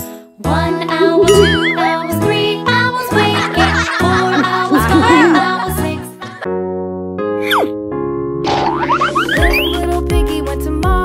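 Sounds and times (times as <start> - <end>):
children's background music: 0.0 - 11.0
cartoon falling glide: 1.0 - 2.2.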